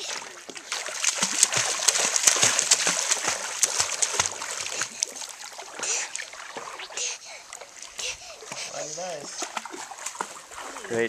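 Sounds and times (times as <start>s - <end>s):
child splashing in water: 0.0s - 7.2s.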